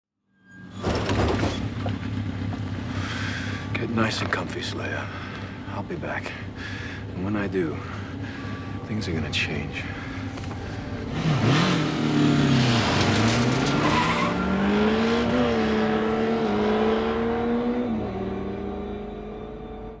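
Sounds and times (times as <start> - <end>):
motorcycle engine revving and accelerating: 11.0 - 20.0.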